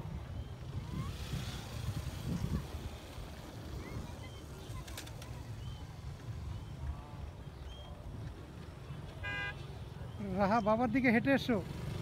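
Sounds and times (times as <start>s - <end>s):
vehicle horn toot: 9.2s - 9.6s.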